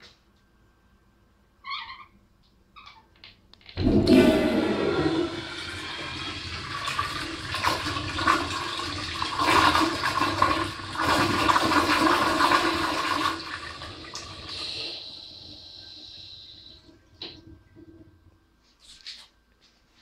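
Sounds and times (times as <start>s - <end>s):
toilet flushing: 3.8s - 18.1s.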